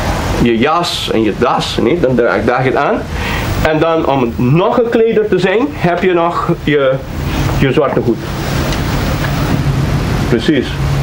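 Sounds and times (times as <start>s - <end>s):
low hum: 0.0s - 11.0s
rushing hiss: 3.1s - 3.8s, 7.0s - 9.7s.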